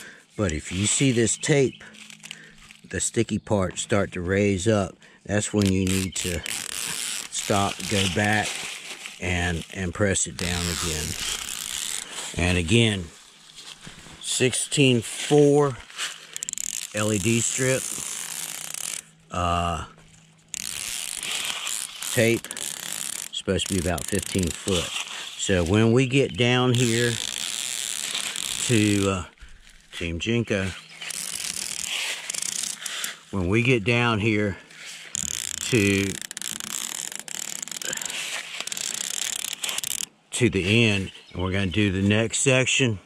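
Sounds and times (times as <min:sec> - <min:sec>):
tape liner peeling rasp: 0:05.4 - 0:14.0, 0:15.1 - 0:19.2, 0:20.4 - 0:30.0, 0:30.8 - 0:33.3, 0:35.0 - 0:40.1.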